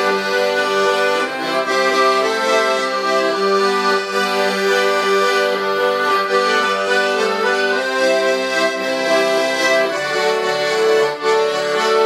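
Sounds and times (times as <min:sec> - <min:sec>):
two accordions playing a duet: 0:00.0 - 0:12.0.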